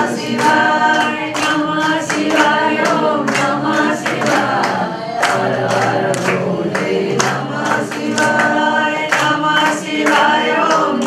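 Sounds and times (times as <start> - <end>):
hand claps: 0.0 - 11.0
women singing in unison: 0.0 - 11.0.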